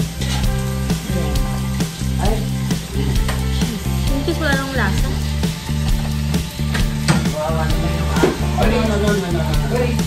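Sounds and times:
background music with beat and bass: 0.0 - 10.0
meat sizzling on a grill: 0.0 - 10.0.

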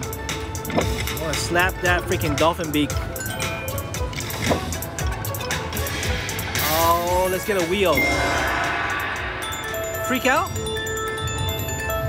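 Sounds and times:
busy background din: 0.0 - 12.0
electronic game music: 0.0 - 12.0
slot machine reel-spin effects: 3.1 - 12.0.

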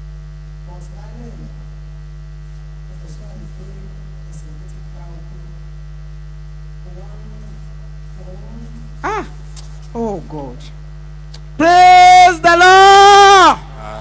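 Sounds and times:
electrical mains hum: 0.0 - 14.0.

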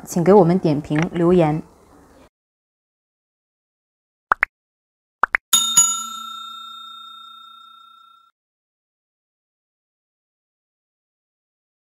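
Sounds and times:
bell-like notification chime: 5.6 - 8.3.

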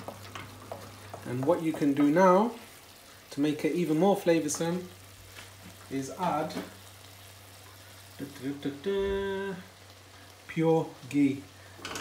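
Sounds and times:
man saying umm: 8.2 - 9.7.

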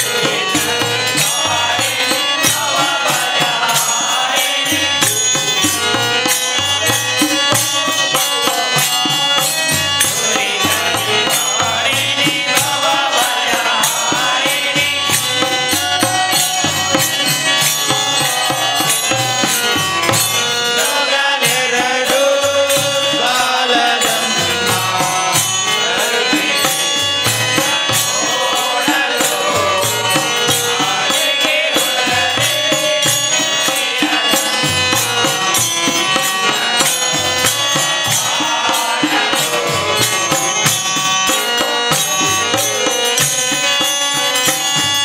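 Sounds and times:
men chanting together: 0.0 - 43.6
men singing devotional song: 0.0 - 45.0.

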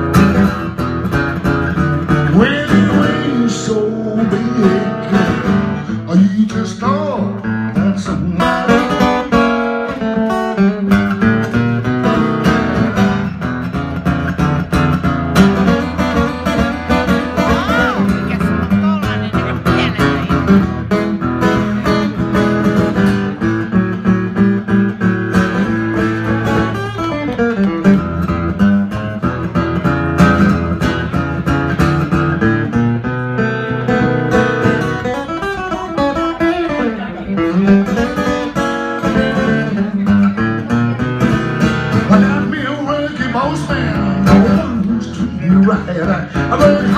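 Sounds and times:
acoustic blues guitar: 0.0 - 46.9.

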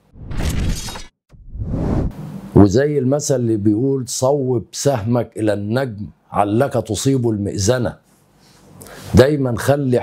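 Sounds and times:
harsh noisy transition burst: 0.2 - 2.6
swelling transition noise: 1.3 - 2.5.

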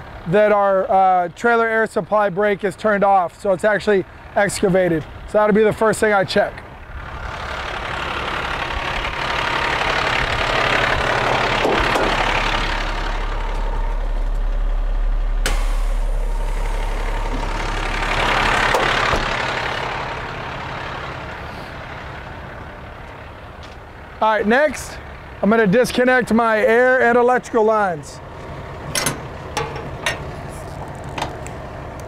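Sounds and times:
diesel truck engine idling: 0.0 - 32.0.

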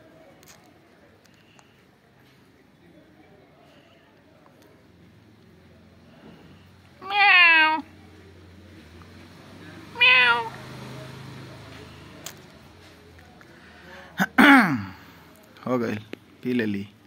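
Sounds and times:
cat meowing: 7.0 - 7.9, 9.9 - 10.6.

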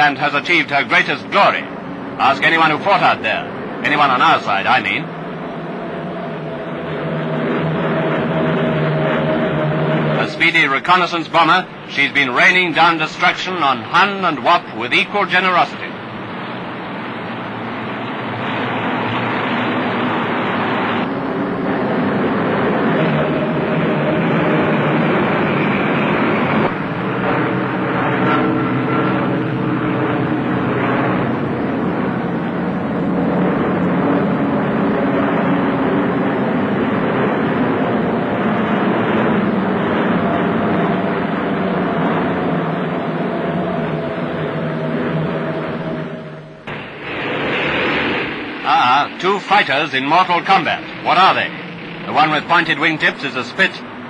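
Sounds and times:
piston engines droning: 0.0 - 54.0.

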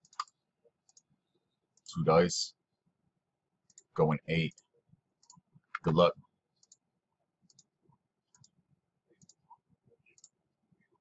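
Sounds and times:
faint computer mouse clicks: 7.5 - 7.7, 8.3 - 8.6, 10.1 - 10.4.

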